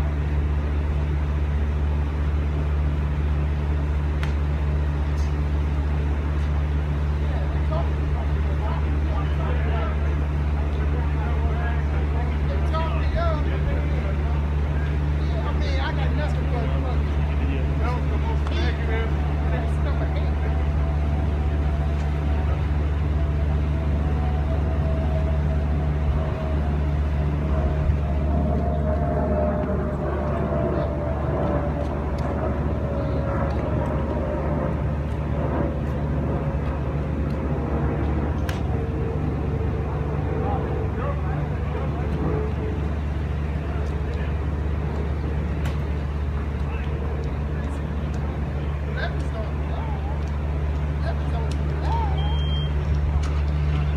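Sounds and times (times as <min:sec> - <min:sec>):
low hum falling in pitch: 0:00.0 - 0:53.9.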